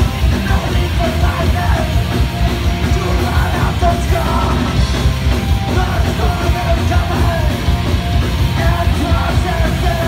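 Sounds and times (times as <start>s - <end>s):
bass guitar: 0.0s - 10.0s
drum kit: 0.0s - 10.0s
electric guitars: 0.0s - 10.0s.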